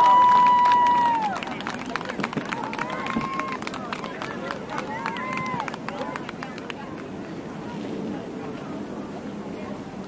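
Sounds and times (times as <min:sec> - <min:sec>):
voices shouting outdoors: 0:00.0 - 0:07.3.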